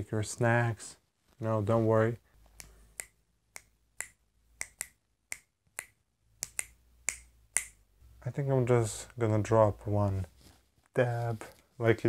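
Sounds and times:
fingers snapping: 2.6s - 7.8s.

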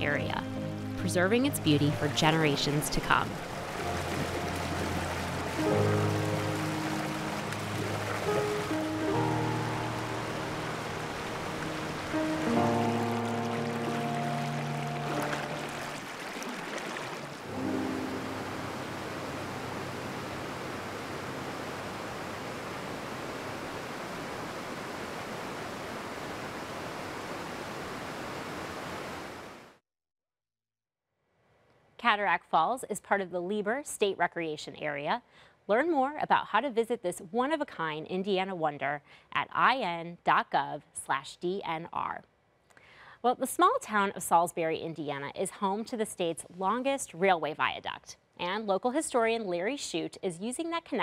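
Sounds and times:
soft held chords: 0.0s - 16.1s, 17.4s - 23.2s
waterfall rushing: 2.0s - 29.7s.

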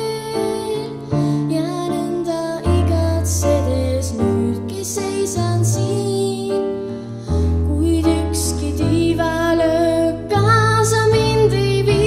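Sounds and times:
girl singing gently: 0.0s - 6.7s
keyboard accompaniment: 0.0s - 12.0s.

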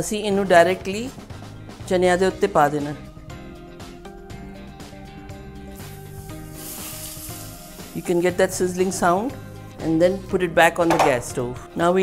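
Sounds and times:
soft background music: 0.0s - 12.0s
hot oil sizzling: 5.7s - 8.4s.

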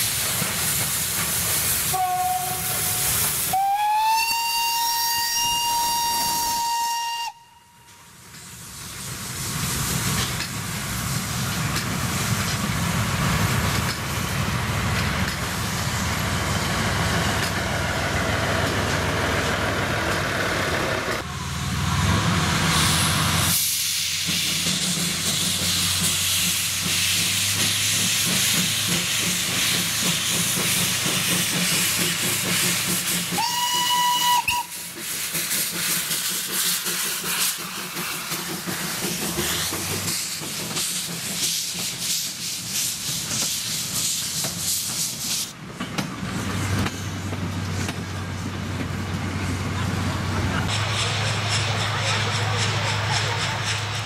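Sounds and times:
hissing steam: 0.0s - 54.0s
steam train running: 0.0s - 54.0s
steam locomotive whistle: 1.9s - 8.2s, 33.3s - 34.9s.

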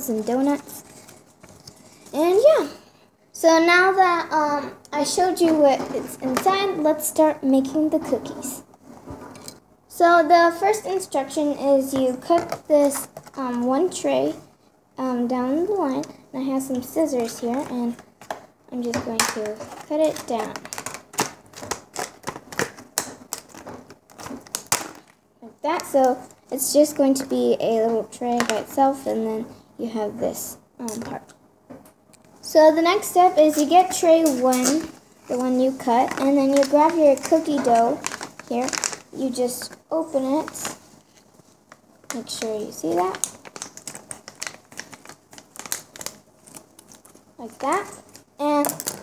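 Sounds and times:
packet crinkling: 0.0s - 2.4s, 16.7s - 26.7s, 33.5s - 49.0s.

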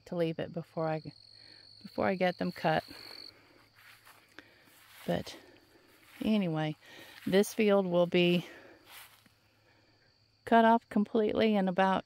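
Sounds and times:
insect trilling: 1.0s - 7.4s.

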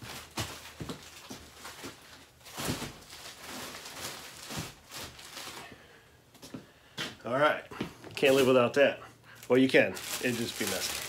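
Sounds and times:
plastic wrapping rustling: 0.0s - 5.8s, 8.1s - 8.8s, 9.4s - 11.0s
footsteps: 6.3s - 8.6s.

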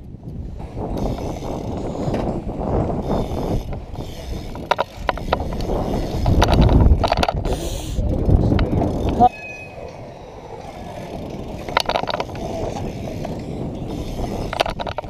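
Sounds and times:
bike clicks and knocks: 0.0s - 15.0s
bike tyres rolling on concrete: 0.0s - 15.0s.

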